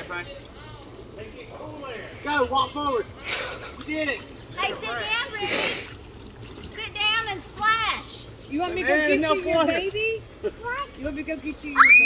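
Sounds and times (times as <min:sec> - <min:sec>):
sprinkler jet splashing into pool: 0:00.0 - 0:12.0.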